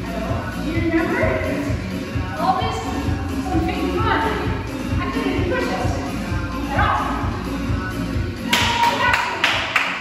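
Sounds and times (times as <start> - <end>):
background music with steady beat: 0.0 - 10.0
person clapping hands: 8.5 - 10.0.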